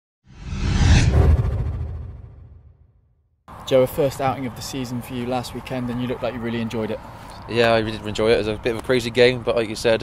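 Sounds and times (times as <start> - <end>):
low rumble: 0.3 - 3.1
whoosh: 0.3 - 3.2.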